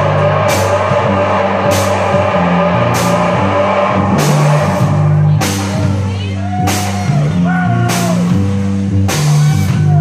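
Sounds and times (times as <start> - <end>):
cymbal crash: 0.0 - 7.3
bass guitar: 0.0 - 10.0
distorted electric guitar: 0.0 - 10.0
drums: 0.0 - 10.0.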